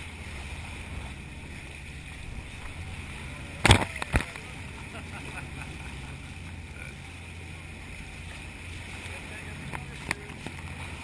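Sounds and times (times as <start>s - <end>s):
low steady hum: 0.0s - 11.0s
water rushing along boat bow: 0.0s - 11.0s.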